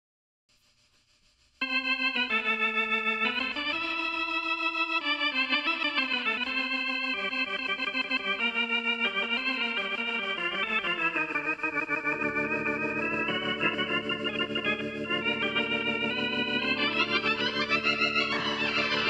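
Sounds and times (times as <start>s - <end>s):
electronic keyboard organ chords: 1.6s - 19.0s.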